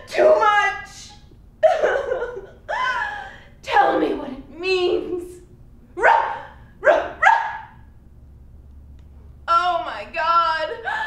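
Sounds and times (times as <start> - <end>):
woman sobbing cries: 1.6 - 3.6, 10.7 - 11.0.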